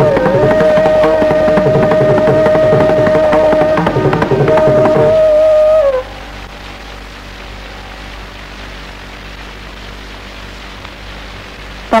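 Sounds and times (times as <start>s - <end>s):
bamboo flute long note: 0.0s - 8.6s
faint low hum: 0.0s - 12.0s
recording hiss: 0.0s - 12.0s.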